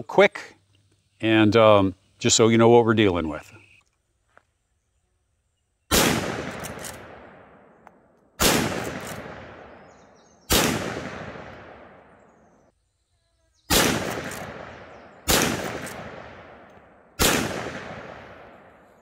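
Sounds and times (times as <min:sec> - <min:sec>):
rifle shots with echo: 0:05.9 - 0:12.5, 0:13.7 - 0:19.0.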